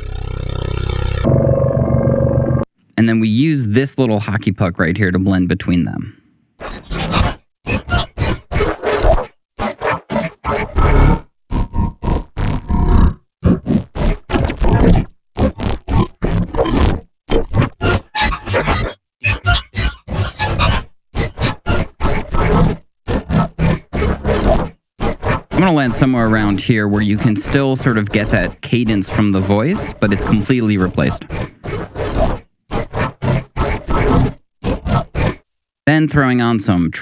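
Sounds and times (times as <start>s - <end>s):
gritty synthesized robot voice: 22.5s - 32.2s.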